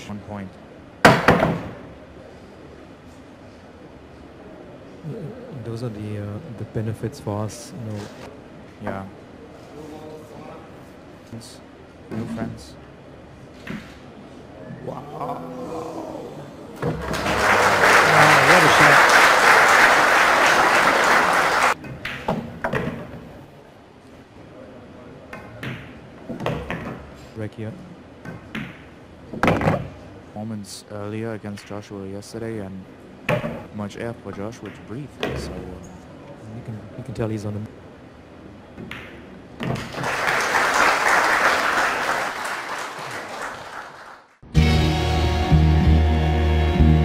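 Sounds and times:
audience applauding: 16.9 - 21.8, 39.8 - 44.4.

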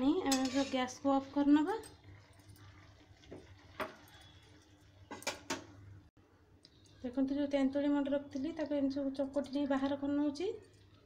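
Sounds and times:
metal utensil clinking on a pan: 0.2 - 1.0.

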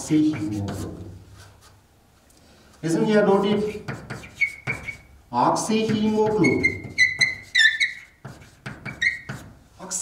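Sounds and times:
chalk squeaking: 0.0 - 1.8, 3.4 - 9.6
chalk tapping and scraping: 0.0 - 1.8, 3.0 - 10.0.

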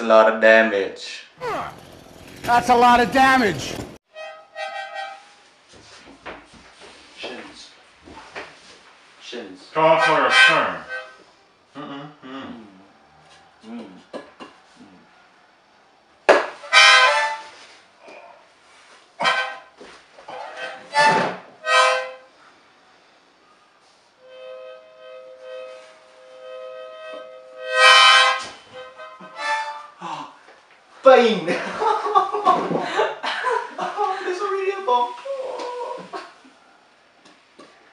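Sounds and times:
harmonica chords: 24.2 - 30.0.

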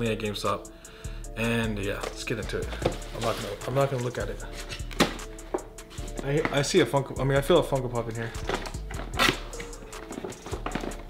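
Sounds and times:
hip-hop beat: 0.0 - 11.0
rustling inside cardboard box: 2.6 - 5.2.

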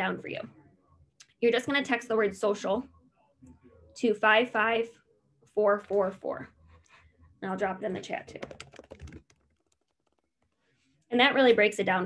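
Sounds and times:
keyboard typing: 8.0 - 10.6.

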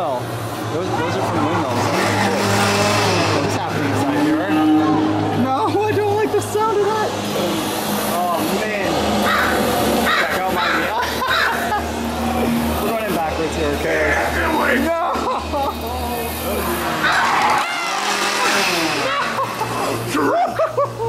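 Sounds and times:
voices: 0.0 - 21.0
shrill wavering cries: 16.7 - 20.4.

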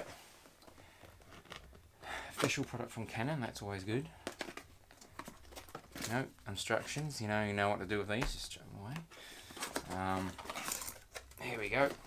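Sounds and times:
packaging rustling: 0.0 - 2.7, 4.0 - 7.7, 8.4 - 12.0.

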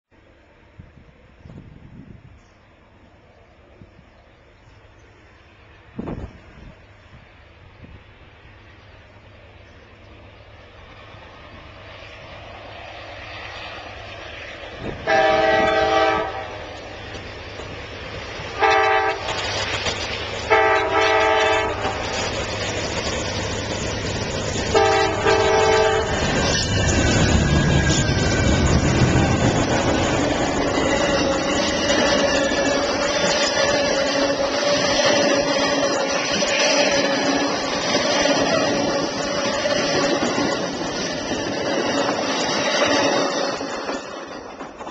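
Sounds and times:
train rumbling past: 0.1 - 44.9
train horn blasts: 14.8 - 16.8, 18.6 - 19.4, 20.5 - 22.2, 24.7 - 29.1
wheel squeal: 26.2 - 44.4.

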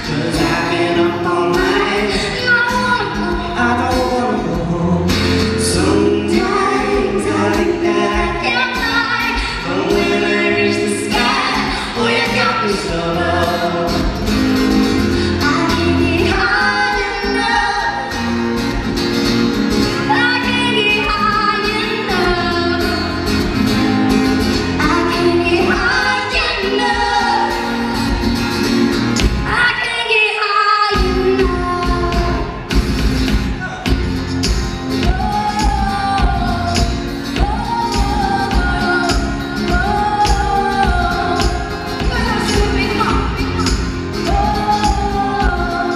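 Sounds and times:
woman singing into microphone: 0.0 - 14.3, 15.2 - 18.3, 19.9 - 23.4, 24.7 - 28.4, 29.4 - 32.7, 34.9 - 45.9
strummed acoustic guitar: 0.0 - 29.6.

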